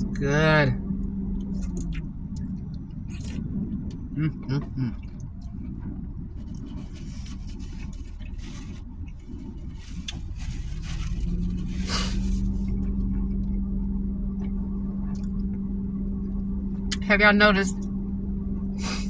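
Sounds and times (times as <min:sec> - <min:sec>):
motor vehicle engine idling: 0:00.0 - 0:19.0
steady low hum: 0:00.0 - 0:19.0.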